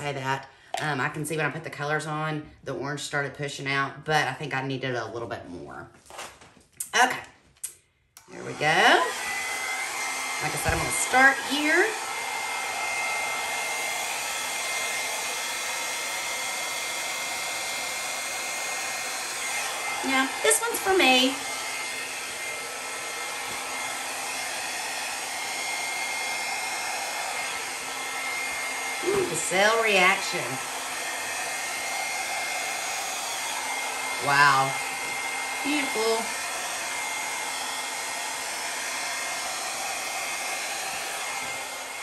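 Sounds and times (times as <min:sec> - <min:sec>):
hair dryer running: 0:08.2 - 0:42.0.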